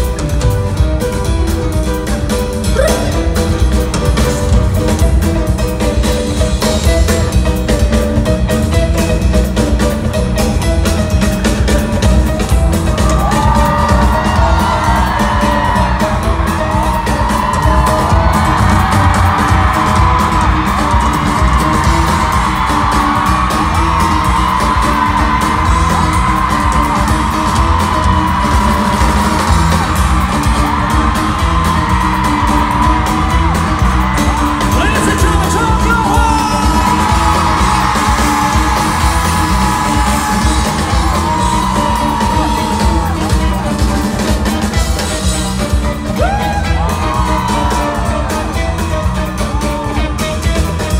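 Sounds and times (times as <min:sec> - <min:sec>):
live pop-rock band: 0:00.0 - 0:50.9
fans yelling and whooping: 0:02.1 - 0:07.7, 0:10.0 - 0:50.9.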